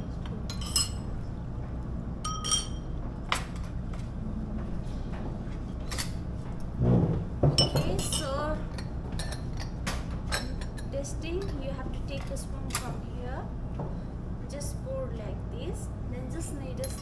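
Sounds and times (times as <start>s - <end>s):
ceramic cups clinking: 0.5s - 1.0s, 2.3s - 2.9s, 7.6s - 9.7s.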